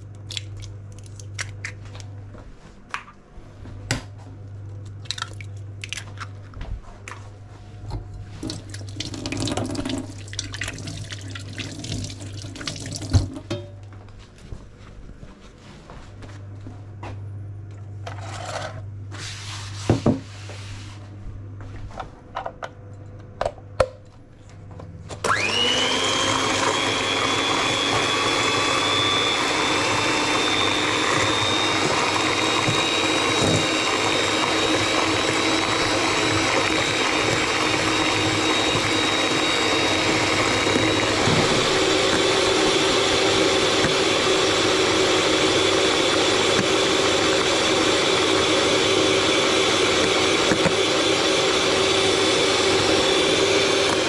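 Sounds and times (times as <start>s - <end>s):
electric hand mixer whining: 25.2s - 54.0s
beaters whisking in metal bowl: 25.5s - 51.1s.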